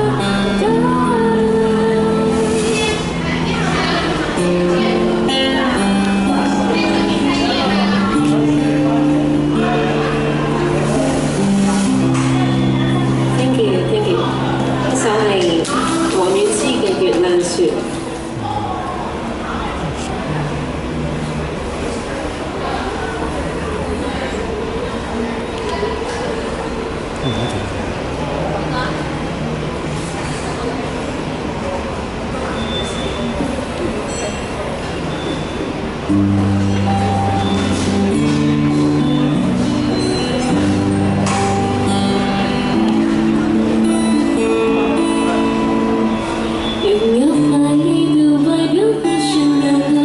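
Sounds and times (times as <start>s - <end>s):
electric guitar ringing chords: 0.0s - 21.6s, 35.9s - 50.0s
busy public space background noise: 0.0s - 50.0s
faint voices: 0.0s - 50.0s.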